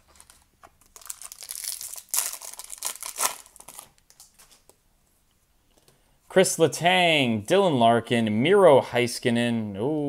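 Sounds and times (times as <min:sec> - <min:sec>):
foil wrapper crinkling and tearing: 0:00.0 - 0:04.6.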